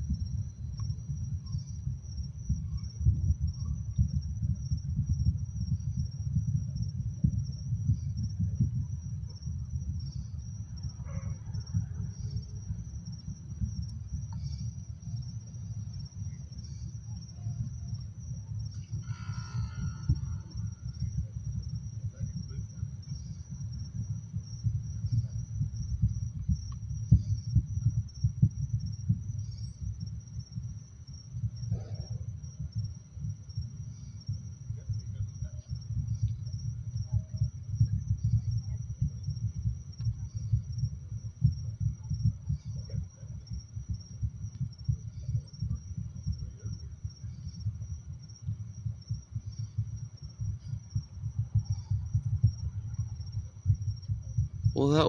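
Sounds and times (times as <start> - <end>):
crickets chirping: 0.0 - 55.0
low crackling rumble: 0.0 - 55.0.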